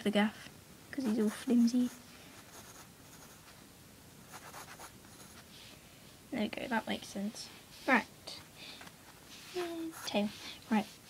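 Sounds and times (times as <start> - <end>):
pencil scratching on paper: 1.0 - 3.5, 4.3 - 5.5, 9.3 - 11.0.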